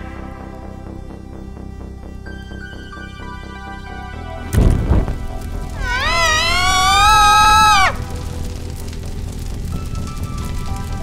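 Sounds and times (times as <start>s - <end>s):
droning horror film score: 0.0s - 11.0s.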